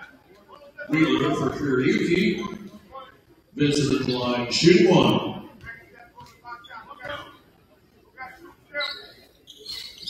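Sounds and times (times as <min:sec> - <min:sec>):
faint voices and chatter: 0:00.0 - 0:10.0.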